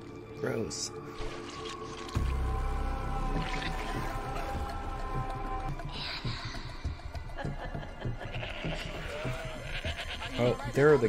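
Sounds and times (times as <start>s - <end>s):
goats bleating: 8.0s - 10.7s.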